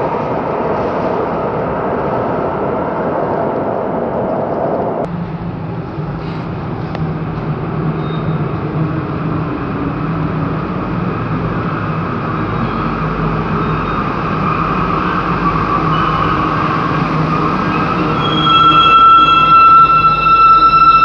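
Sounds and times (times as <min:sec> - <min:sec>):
train rumble: 0:00.0 - 0:21.0.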